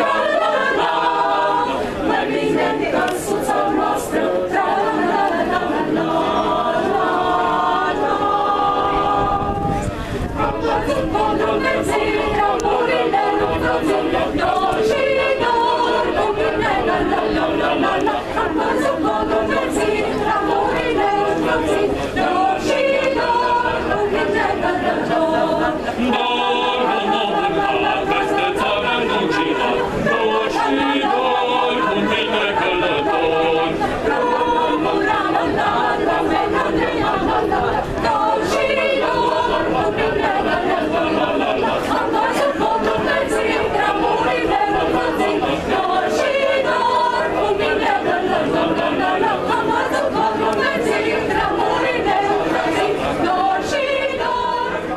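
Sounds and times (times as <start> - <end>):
mixed choir singing a cappella: 0.0 - 54.9.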